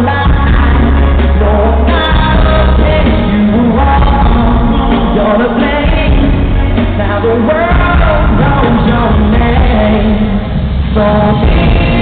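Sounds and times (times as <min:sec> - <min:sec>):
live pop band with male singer: 0:00.0 - 0:12.0.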